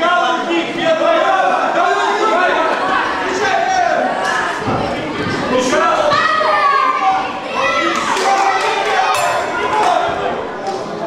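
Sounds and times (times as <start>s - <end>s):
children shouting: 1.8s - 10.3s.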